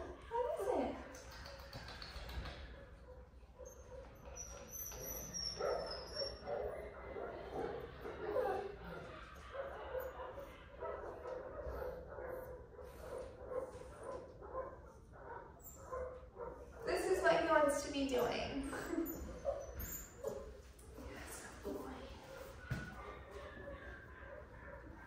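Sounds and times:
puppy whining: 0:03.5 - 0:12.8, 0:14.9 - 0:16.9, 0:18.2 - 0:20.6.

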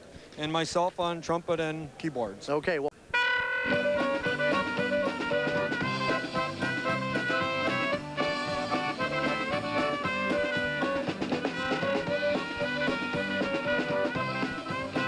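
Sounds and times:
dance band playing: 0:03.2 - 0:15.0.

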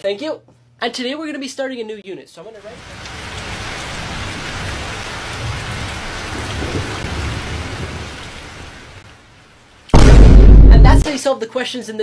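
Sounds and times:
rain falling: 0:02.6 - 0:10.0
low thunder rumble: 0:05.4 - 0:08.2, 0:10.0 - 0:11.0
loud boom: 0:09.9 - 0:11.0.

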